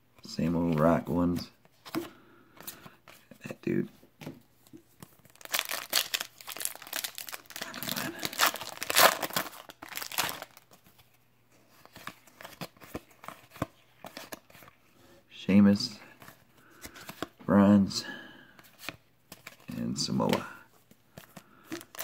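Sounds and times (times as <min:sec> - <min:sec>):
foil wrapper tearing and crinkling: 0:05.3 - 0:10.6.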